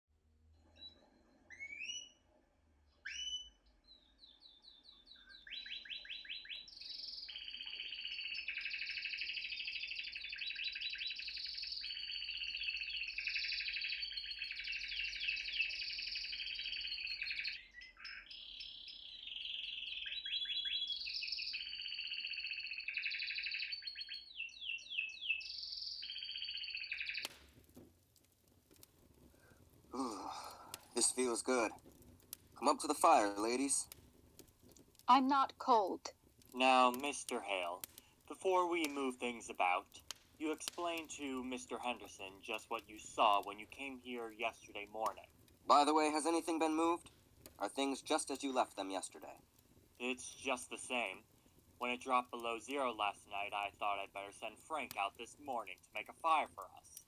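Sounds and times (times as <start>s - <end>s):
canary singing: 0.8s - 2.2s, 3.0s - 27.4s.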